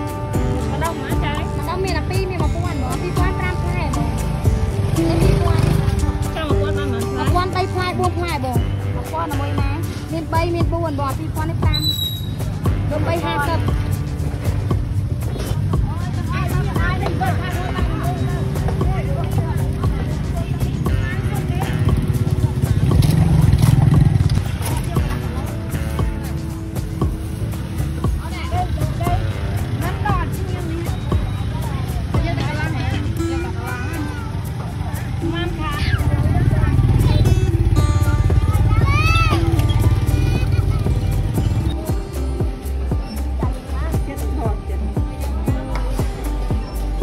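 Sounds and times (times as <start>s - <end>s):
music playing: 0.0s - 47.0s
rumble of passing vehicles: 0.0s - 47.0s.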